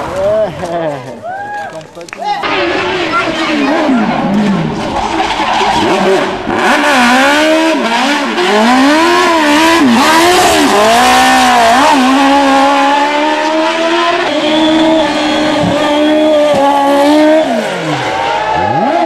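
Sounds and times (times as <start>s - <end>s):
racing car engine revving: 2.4s - 19.0s.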